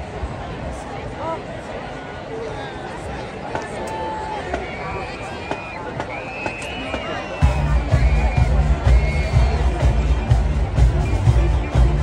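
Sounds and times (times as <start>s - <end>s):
stadium crowd chatter: 0.0s - 12.0s
driving drum beat: 5.5s - 12.0s
marching band playing: 6.4s - 12.0s.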